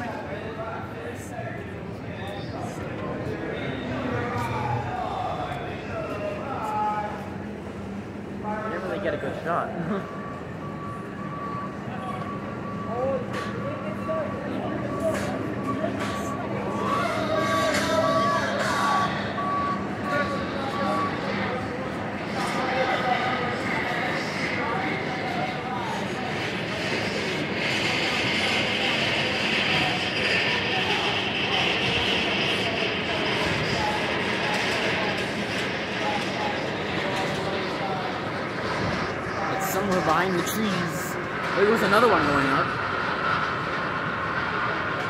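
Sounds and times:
roller coaster rushing on track: 0.0s - 45.0s.

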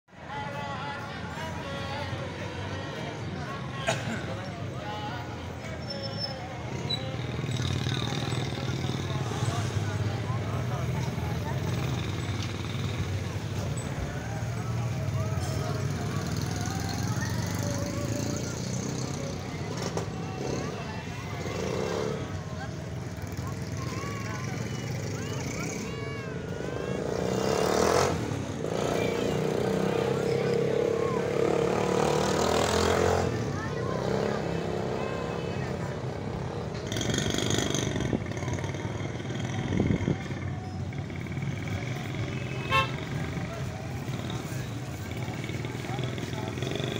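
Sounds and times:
passing vehicles: 0.1s - 46.9s
car horns: 42.3s - 43.2s.

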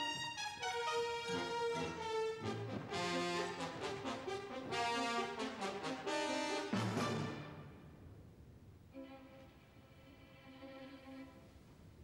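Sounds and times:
orchestral brass chords: 0.0s - 7.9s.

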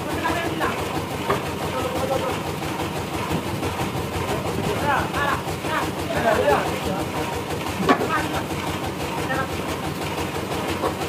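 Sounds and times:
sawmill machinery running: 0.0s - 11.0s.

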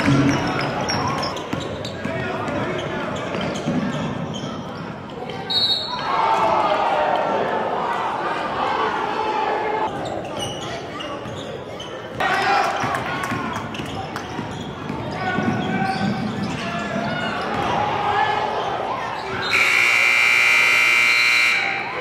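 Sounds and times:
voices in a gym: 0.0s - 22.0s
scoreboard horn buzzing: 19.5s - 21.9s.

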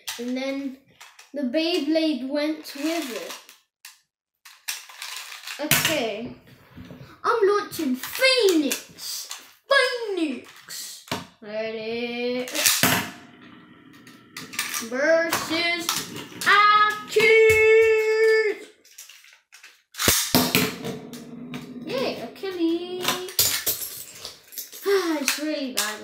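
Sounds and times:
clicks and rattles of handled parts: 0.0s - 1.3s, 2.7s - 6.0s, 18.0s - 20.4s, 23.0s - 26.0s
spinning top whirring on wood: 13.5s - 18.5s
boy's wordless vocal sounds: 14.7s - 18.7s, 21.8s - 23.4s.

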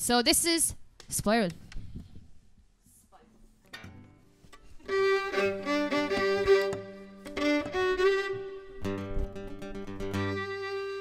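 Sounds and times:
acoustic guitar strum: 4.9s - 11.0s.

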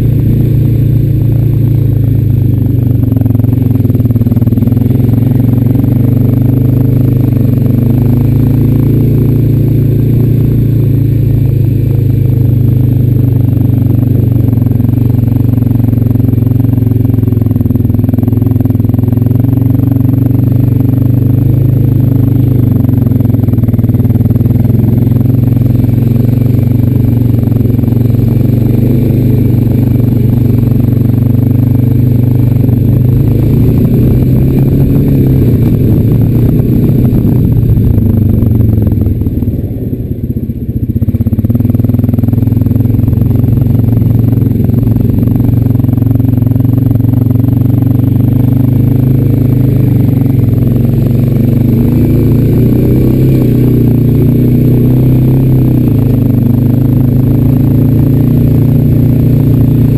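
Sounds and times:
quad bike engine running: 0.0s - 59.9s.

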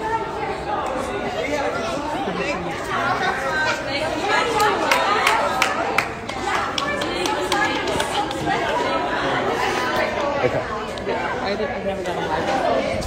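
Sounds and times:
crowd chattering in a large hall: 0.0s - 13.0s.

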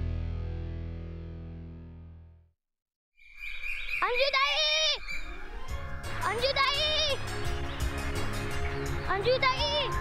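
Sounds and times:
small birds chirping: 3.2s - 10.0s.

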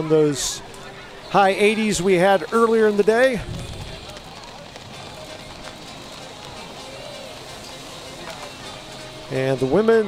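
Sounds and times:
crowd hum: 0.0s - 10.0s
faint distant voices: 0.0s - 10.0s.

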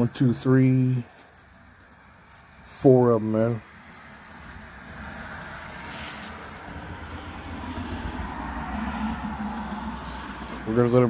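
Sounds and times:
plastic wrapping crinkling: 0.0s - 6.6s.

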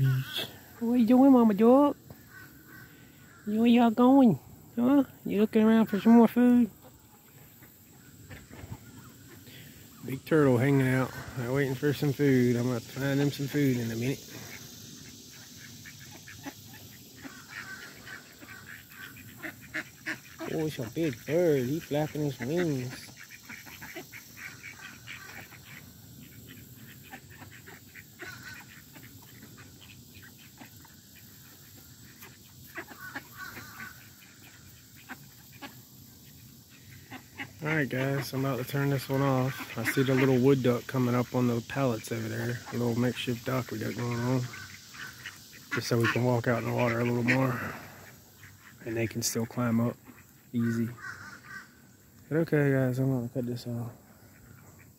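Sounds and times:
faint waterfowl calls: 0.0s - 54.9s
soft bird call: 13.5s - 37.8s.

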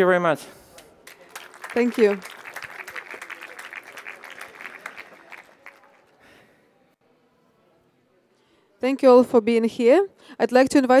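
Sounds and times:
audience applauding: 1.0s - 6.3s.

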